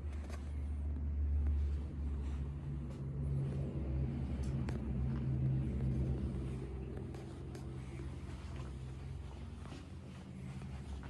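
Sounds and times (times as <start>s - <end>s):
low mechanical rumble: 0.0s - 11.0s.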